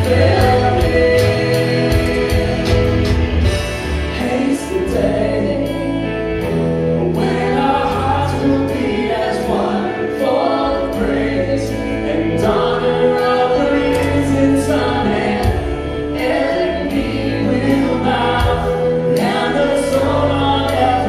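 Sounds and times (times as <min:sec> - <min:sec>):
voices singing together: 0:00.0 - 0:21.0
worship band playing: 0:00.0 - 0:21.0.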